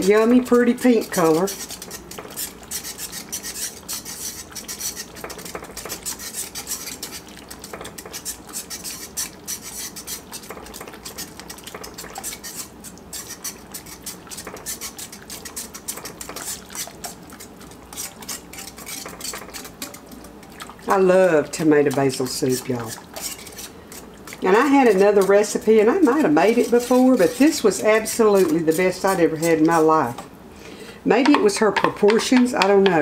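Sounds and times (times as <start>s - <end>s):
utensil scraping a pan: 0.0s - 30.2s.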